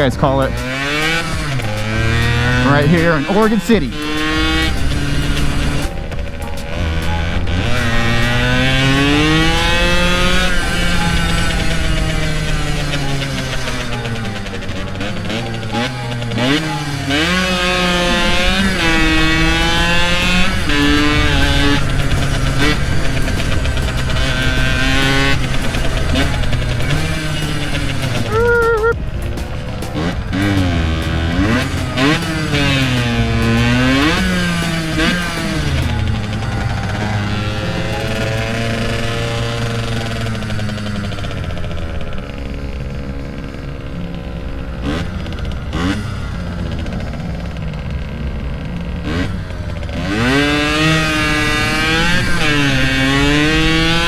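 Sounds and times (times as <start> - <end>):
motorcycle engine revving: 0.0 - 54.0
short high-pitched tone: 28.3 - 29.0.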